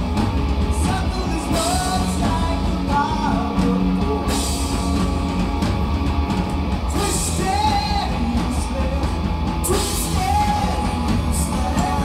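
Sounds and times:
drum kit: 0:00.0 - 0:12.0
live rock band playing: 0:00.0 - 0:12.0.

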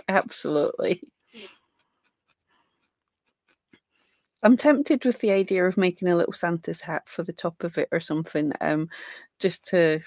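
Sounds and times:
felting needle jabbing into wool: 0:00.0 - 0:06.7.

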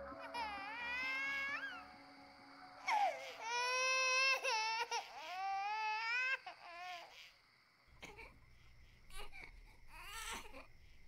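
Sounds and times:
baby crying: 0:00.0 - 0:01.9, 0:02.8 - 0:07.2.

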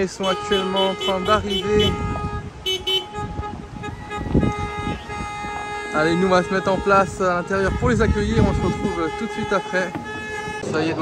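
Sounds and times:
car horns honking: 0:00.0 - 0:11.0
wind buffeting microphone: 0:00.0 - 0:11.0.

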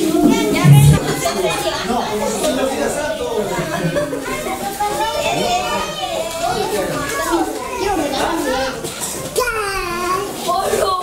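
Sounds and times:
young children playing and calling: 0:08.8 - 0:11.0.

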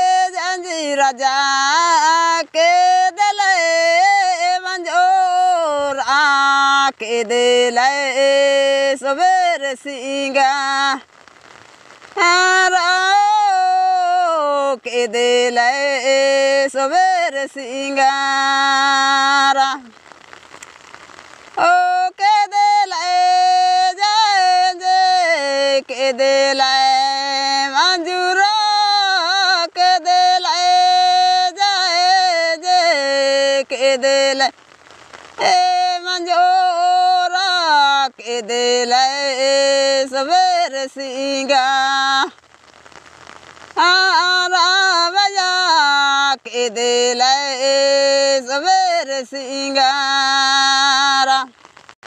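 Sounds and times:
faint crackling hiss: 0:00.0 - 0:52.0
person singing folk song: 0:00.0 - 0:52.0.

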